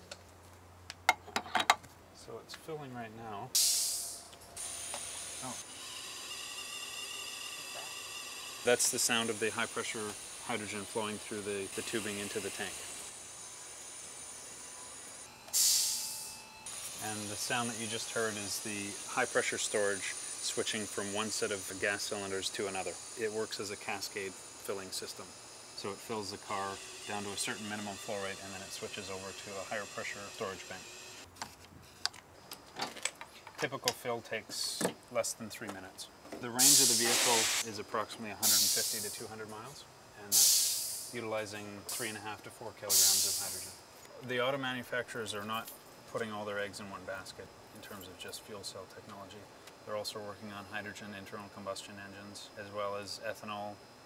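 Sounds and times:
high-pitched hiss with whistling: 3.5 - 31.2, 36.4 - 53.8.

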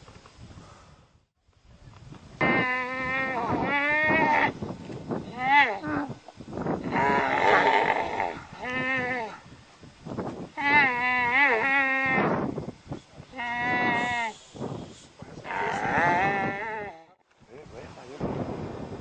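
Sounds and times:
camel moaning calls: 2.4 - 4.6, 5.2 - 6.2, 6.8 - 9.4, 10.6 - 12.4, 13.3 - 14.4, 15.4 - 17.2.

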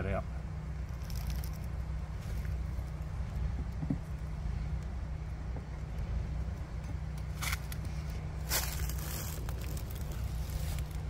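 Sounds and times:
honeybees humming: 0.0 - 11.0
steady low rumble: 0.0 - 11.0.

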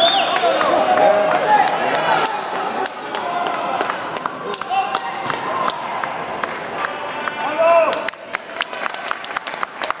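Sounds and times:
audience clapping: 0.0 - 10.0.

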